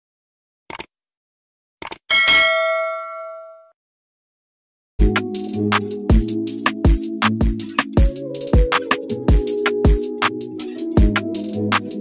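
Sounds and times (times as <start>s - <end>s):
click: 0.7s - 0.9s, 1.8s - 2.0s
bell ding: 2.1s - 3.7s.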